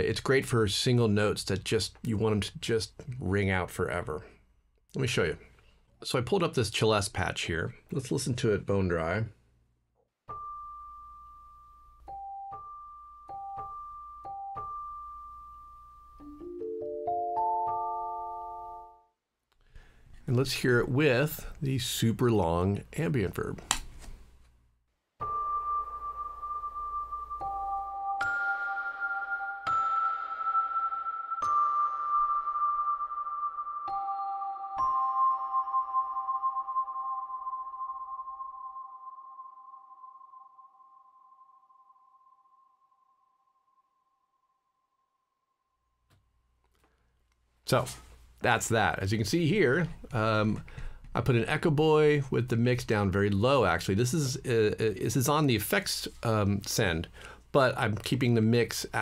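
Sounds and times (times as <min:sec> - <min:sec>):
celeste arpeggio notes: 0:10.3 - 0:19.0, 0:25.2 - 0:41.0.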